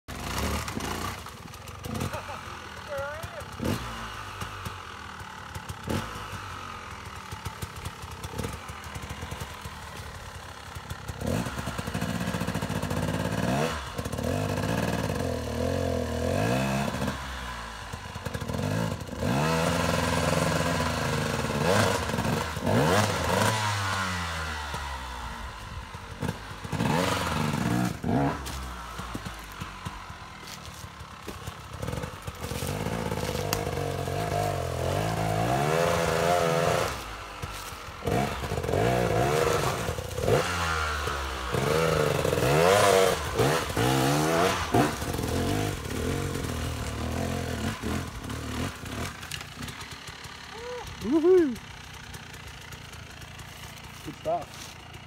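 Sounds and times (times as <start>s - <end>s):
dirt bike engine revving: 0.1s - 55.0s.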